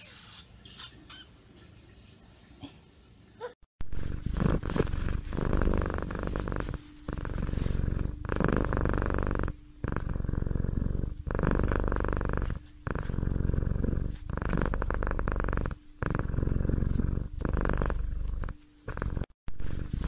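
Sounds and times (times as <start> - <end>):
cat purring: 3.8 - 20.0.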